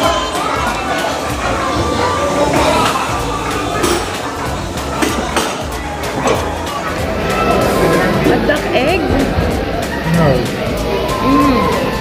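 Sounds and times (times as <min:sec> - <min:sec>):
music playing: 0:00.0 - 0:12.0
people chattering: 0:00.0 - 0:12.0
cutlery and dishes clinking: 0:02.5 - 0:07.0.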